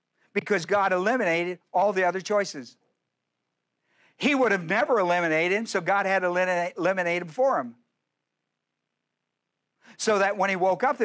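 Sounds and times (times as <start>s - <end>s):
person speaking: 0.3s - 3.0s, 4.2s - 7.9s.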